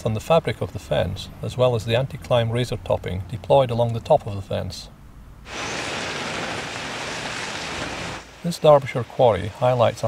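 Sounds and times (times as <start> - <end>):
rock and gravel sliding: 5.5 - 9.0.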